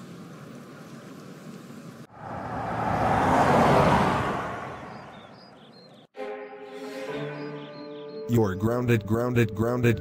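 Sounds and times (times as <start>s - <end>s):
car driving past: 2.0s - 5.7s.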